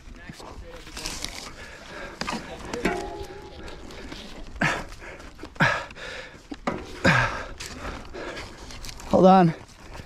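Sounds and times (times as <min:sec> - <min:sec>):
bike scuffling and knocking: 0:00.9 - 0:04.5
person breathing: 0:01.4 - 0:08.7.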